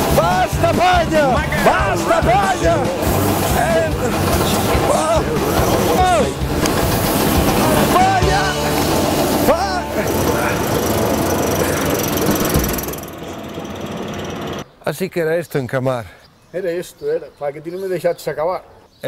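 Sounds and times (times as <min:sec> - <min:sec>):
man yelling: 0:00.0 - 0:06.4, 0:07.8 - 0:08.8
straw blowing machine running: 0:00.0 - 0:14.6.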